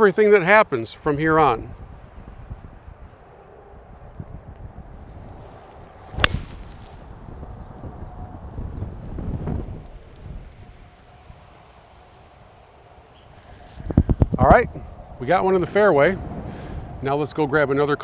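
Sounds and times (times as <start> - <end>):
wind rumble on microphone: 1.1 - 12.5, 13.2 - 18.0
golf club striking ball: 6.1 - 6.9.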